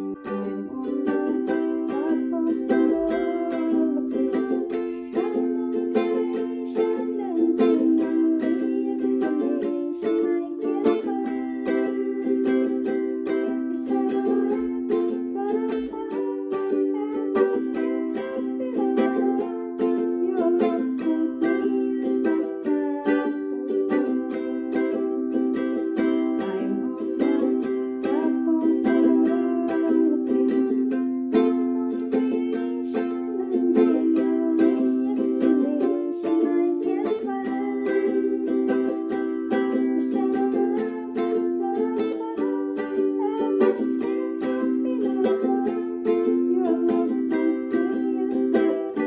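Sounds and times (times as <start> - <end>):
ukulele strumming: 0.0 - 49.0.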